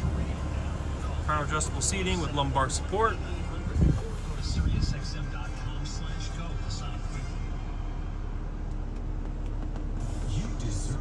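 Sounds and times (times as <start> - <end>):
car cabin hum and rumble: 0.0 - 11.0.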